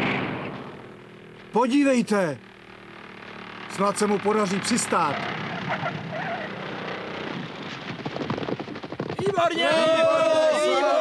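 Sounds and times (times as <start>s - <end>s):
plane rumbling along grass: 0.0s - 10.1s
faint shouts: 9.2s - 11.0s.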